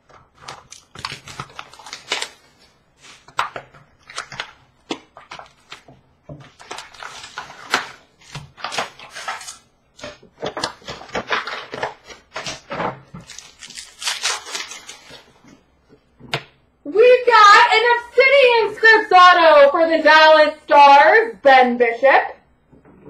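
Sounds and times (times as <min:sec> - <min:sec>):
cards crinkling and rustling: 0:00.0 - 0:15.6
card packs ripped open: 0:00.3 - 0:05.9, 0:06.5 - 0:15.4.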